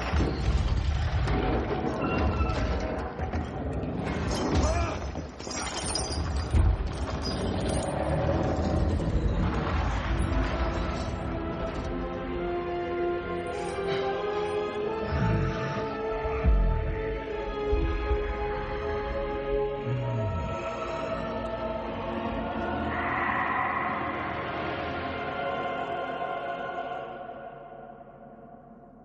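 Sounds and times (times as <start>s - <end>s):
orchestral film score: 7.6s - 28.7s
choir singing long notes: 18.3s - 28.9s
rushing roar: 19.9s - 27.1s.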